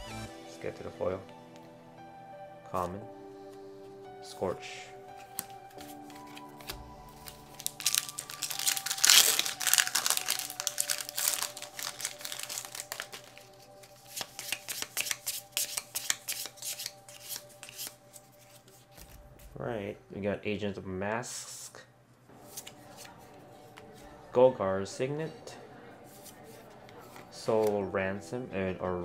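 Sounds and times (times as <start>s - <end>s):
background music: 0.0s - 21.0s, 22.3s - 29.0s
cards being handled: 5.1s - 19.6s, 22.4s - 24.1s, 26.1s - 27.8s
foil wrapper tearing and crinkling: 7.1s - 16.6s.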